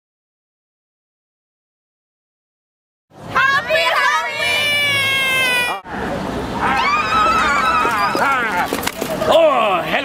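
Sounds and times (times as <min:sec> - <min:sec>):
street crowd noise: 0:03.1 - 0:10.0.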